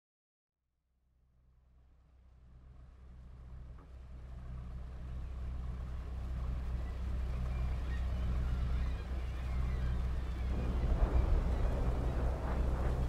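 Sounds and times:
boat engine humming: 0:01.7 - 0:13.0
sea noise: 0:05.0 - 0:13.0
faint gull calls: 0:06.8 - 0:13.0.

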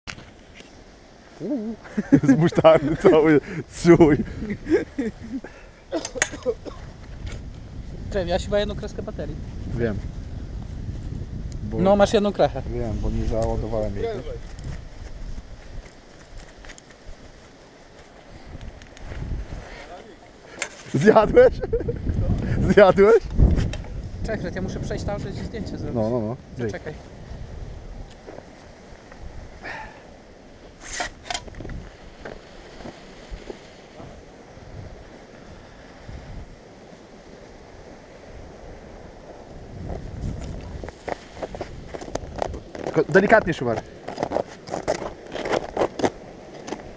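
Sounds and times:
wind rumble on microphone: 0:00.1 - 0:20.2, 0:20.8 - 0:46.9
clothing and gear rustling: 0:12.8 - 0:21.2, 0:30.6 - 0:35.5, 0:38.9 - 0:46.9
small clicks of gear: 0:15.8 - 0:17.0.

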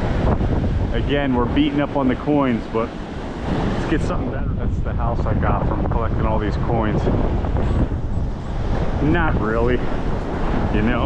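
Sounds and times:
surf: 0:00.0 - 0:11.0
wind buffeting microphone: 0:00.0 - 0:11.0.

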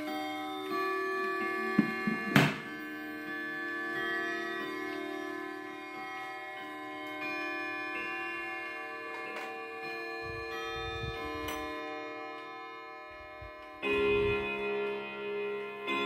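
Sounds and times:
clock chime melody: 0:00.0 - 0:16.0
clock hour strike: 0:00.7 - 0:03.4, 0:13.2 - 0:16.0.

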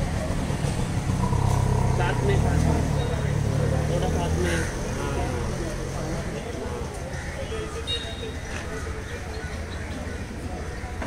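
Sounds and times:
vehicle engine running: 0:00.0 - 0:06.3
chatter of voices: 0:00.0 - 0:11.0.

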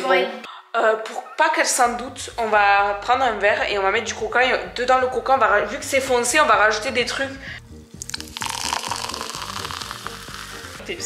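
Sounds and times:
soda fizzing: 0:08.0 - 0:10.8
soda pouring into a glass: 0:08.0 - 0:10.8.

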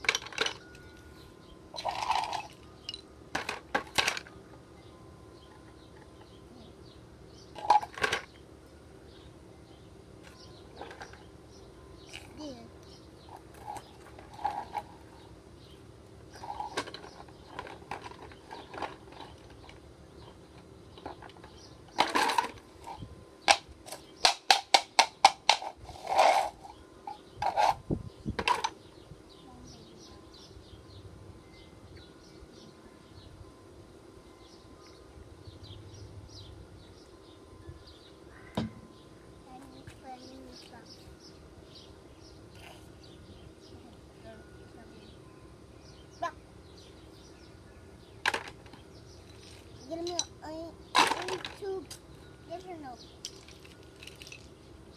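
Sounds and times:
toy blocks clattering into bucket: 0:00.0 - 0:00.6, 0:01.8 - 0:04.3, 0:24.2 - 0:26.6, 0:51.0 - 0:51.6, 0:53.2 - 0:54.5.

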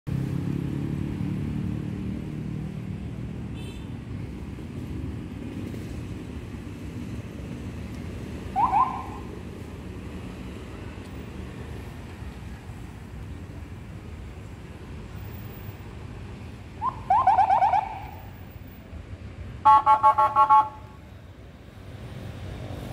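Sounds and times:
car engines passing: 0:00.1 - 0:22.9
siren warning blips: 0:08.5 - 0:09.3, 0:16.8 - 0:18.2
siren warning tone: 0:08.5 - 0:09.3, 0:16.8 - 0:18.2.

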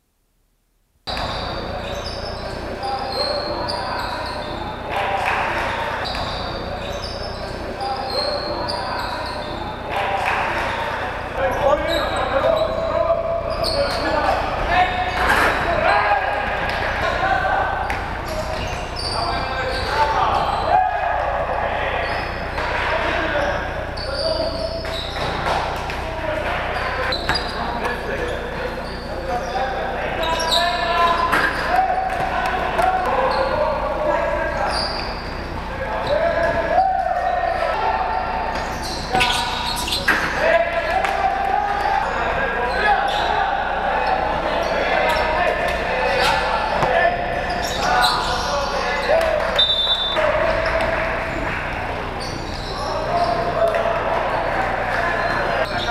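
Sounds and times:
players calling out: 0:01.1 - 0:55.9.

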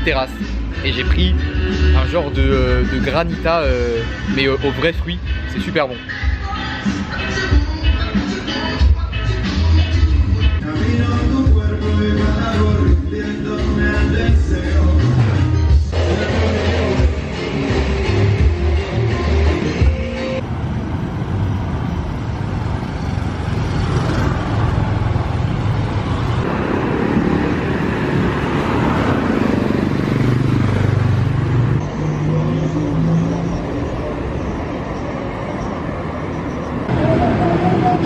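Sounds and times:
city street traffic: 0:00.0 - 0:38.0
motorcycle passing by: 0:22.0 - 0:33.6.

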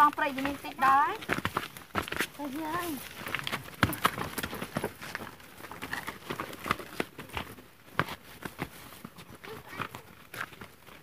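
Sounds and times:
footfalls on loose earth: 0:00.0 - 0:11.0.

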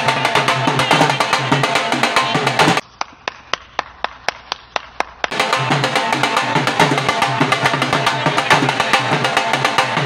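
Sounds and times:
person clapping hands: 0:03.0 - 0:05.4.

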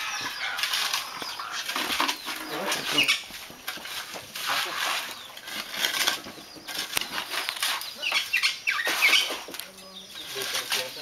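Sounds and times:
animal sounds: 0:00.0 - 0:11.0.

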